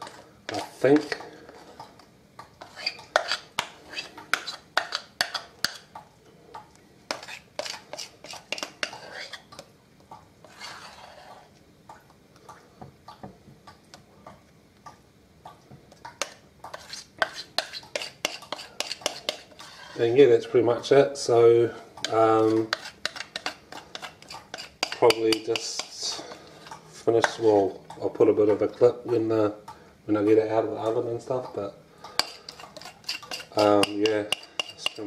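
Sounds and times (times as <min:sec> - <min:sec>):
metal spoon scraping glass bowl: 0:10.4 - 0:11.4, 0:16.7 - 0:20.2, 0:22.4 - 0:26.0, 0:32.2 - 0:35.0.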